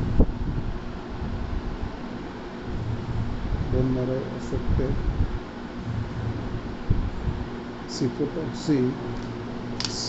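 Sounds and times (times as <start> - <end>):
wind buffeting microphone: 0.0 - 2.0, 2.6 - 7.7.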